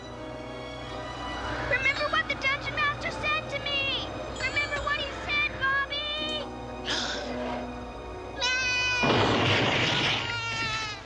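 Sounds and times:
background music: 0:00.0 - 0:11.0
high wavering bleating cries: 0:08.4 - 0:09.1.

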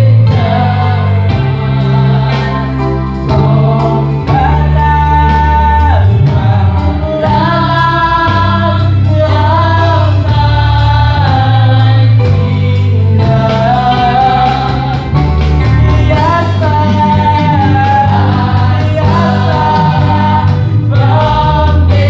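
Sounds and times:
group singing a hymn: 0:00.0 - 0:22.0
low musical accompaniment: 0:00.0 - 0:22.0.

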